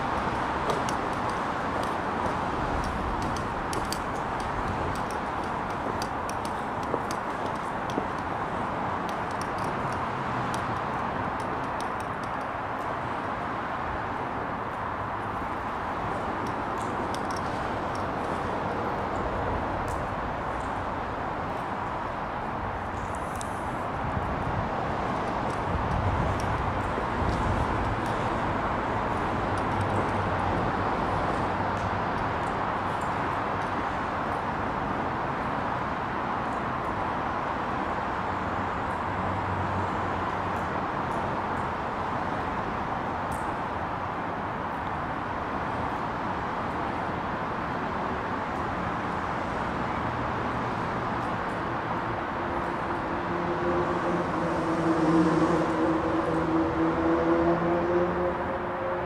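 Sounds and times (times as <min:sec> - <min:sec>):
traffic roar overhead: 0:00.0 - 0:59.0.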